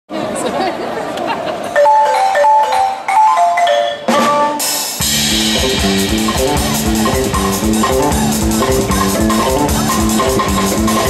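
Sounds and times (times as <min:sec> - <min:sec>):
crowd chatter: 0:00.1 - 0:02.2, 0:04.0 - 0:11.0
live band playing: 0:01.8 - 0:11.0.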